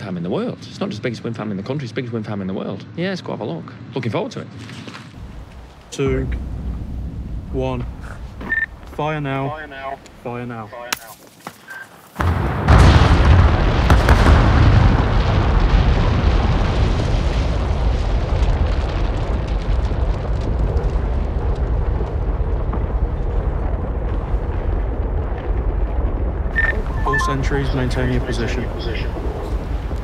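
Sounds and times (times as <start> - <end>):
demolition charges banging: 5.2 - 10.6, 12.2 - 30.0
deep rumble of collapsing structures: 5.2 - 10.7, 12.2 - 30.0.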